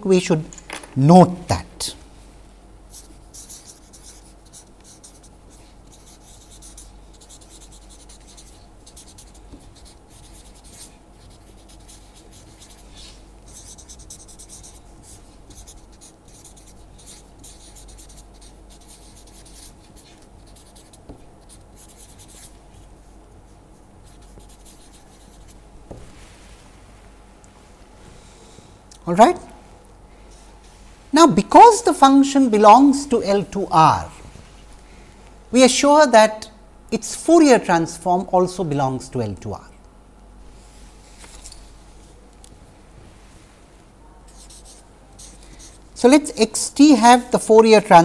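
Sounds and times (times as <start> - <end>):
steady low hum: 0.0 - 48.0
marker scratching on paper: 2.9 - 26.3, 44.3 - 47.2.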